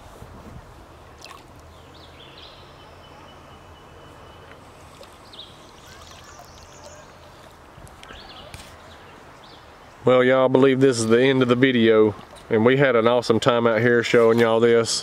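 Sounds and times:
water around gliding kayak: 0.0s - 10.0s, 11.0s - 13.2s
faint splashes: 1.0s - 1.8s, 4.4s - 8.8s, 12.0s - 12.6s
birds calling: 1.6s - 10.2s.

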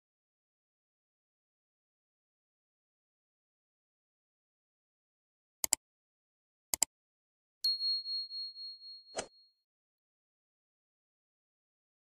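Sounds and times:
high notification bell ding: 7.7s - 9.4s.

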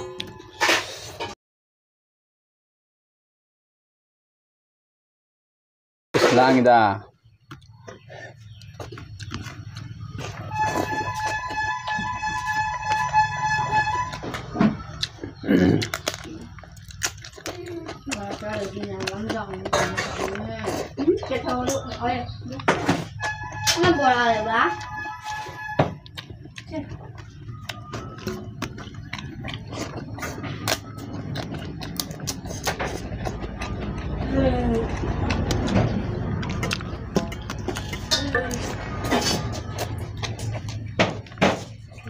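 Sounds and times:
low engine rumble: 7.2s - 42.0s
open-mouthed chewing: 7.3s - 23.7s, 24.7s - 42.0s
vehicle horn blast: 10.5s - 14.2s, 23.2s - 26.0s.

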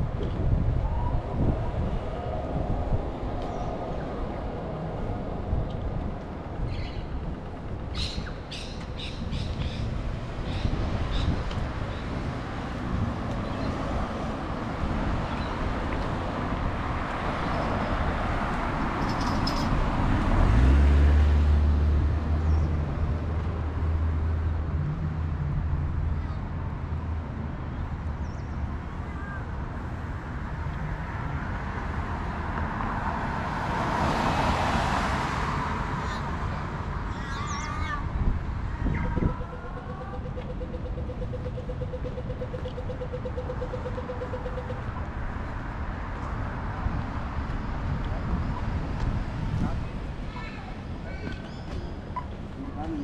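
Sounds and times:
vehicle passing: 1.1s - 26.0s, 29.8s - 37.2s.

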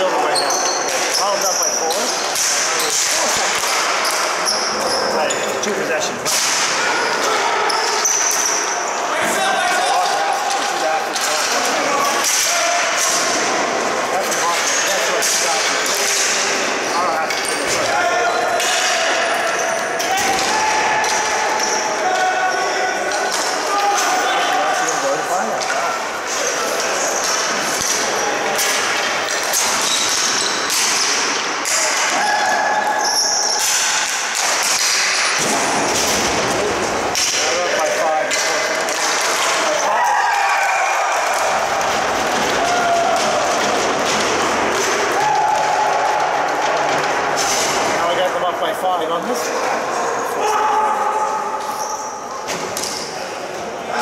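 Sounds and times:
players shouting: 6.3s - 48.8s, 49.4s - 52.3s.

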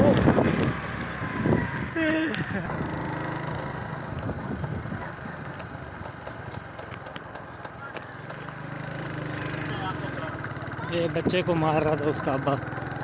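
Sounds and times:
road noise: 0.0s - 13.0s
vehicle engine cruising: 0.0s - 13.0s
wind: 0.0s - 13.0s.

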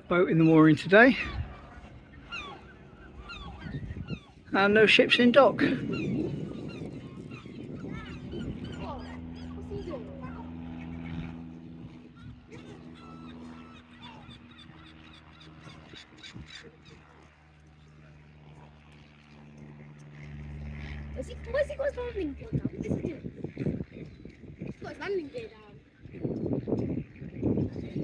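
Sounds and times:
birds calling: 0.0s - 28.0s
steady low hum: 0.0s - 28.0s.

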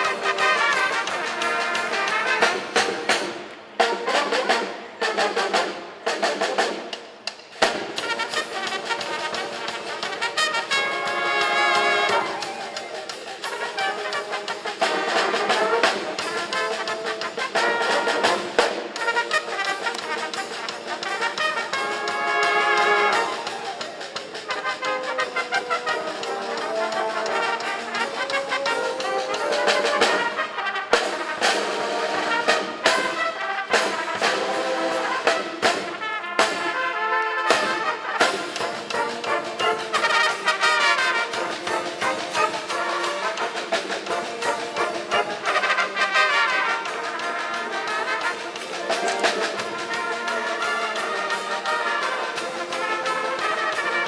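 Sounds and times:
trumpets playing in harmony: 0.0s - 6.7s, 7.7s - 54.0s.

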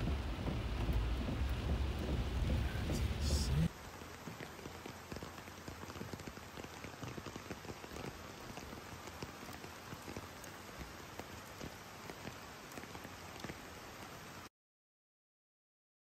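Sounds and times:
rain falling on water: 0.0s - 14.5s.

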